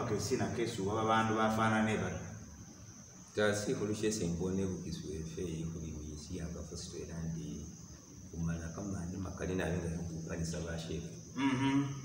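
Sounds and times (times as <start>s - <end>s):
steady high-pitched whine: 0.0s - 12.0s
man speaking: 8.4s - 11.2s.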